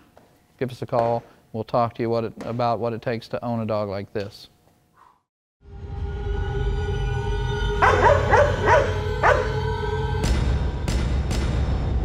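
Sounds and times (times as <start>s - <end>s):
dramatic music with low rumble: 5.7s - 12.0s
large dog barking: 7.8s - 9.6s.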